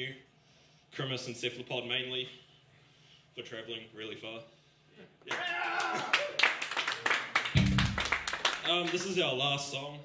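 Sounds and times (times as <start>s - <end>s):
crowd clapping: 5.3s - 9.4s.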